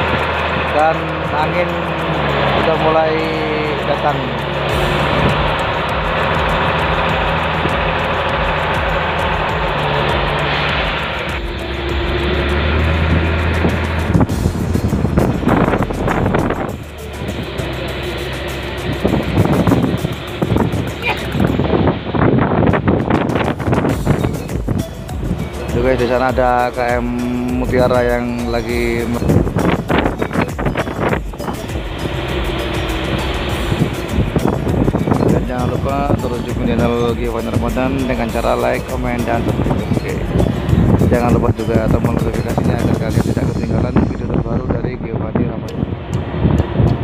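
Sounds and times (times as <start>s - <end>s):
boat engine running: 0.0s - 47.0s
wind buffeting microphone: 0.0s - 47.0s.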